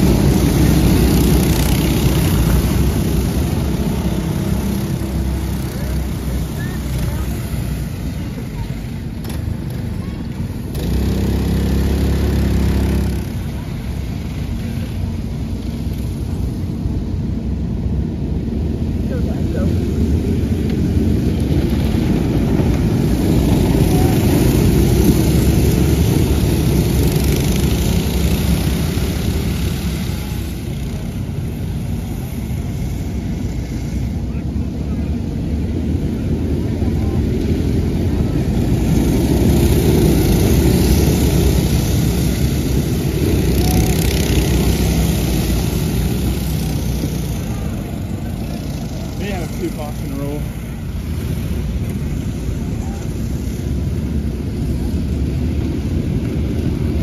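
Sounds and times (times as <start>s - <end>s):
go-kart engines droning: 0.0s - 57.0s.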